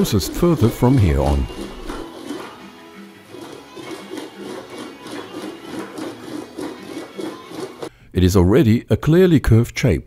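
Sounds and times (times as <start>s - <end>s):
rhythmic metal rolling: 0.0s - 7.9s.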